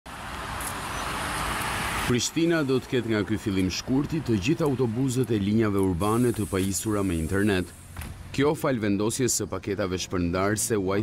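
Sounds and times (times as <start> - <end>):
cars passing: 0.1 - 8.8.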